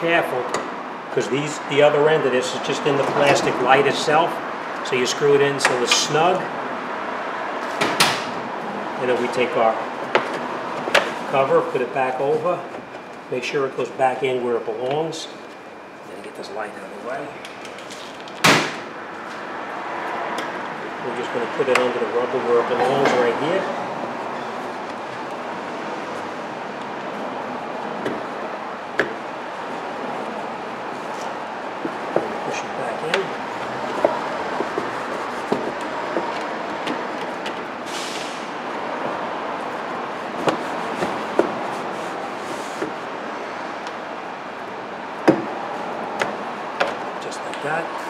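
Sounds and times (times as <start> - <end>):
shop noise: 0.0 - 48.0.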